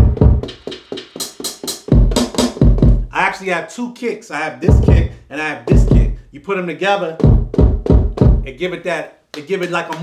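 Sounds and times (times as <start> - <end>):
hip-hop drum beat: 0.0 - 3.6, 4.6 - 10.0.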